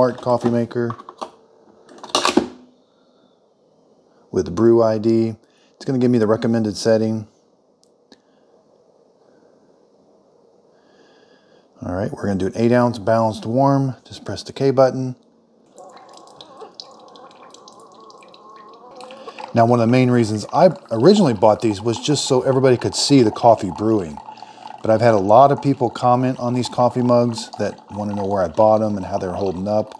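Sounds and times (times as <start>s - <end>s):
coffee dripping into glass mug: 15.7s - 29.9s
coffee maker gurgling water: 15.7s - 29.9s.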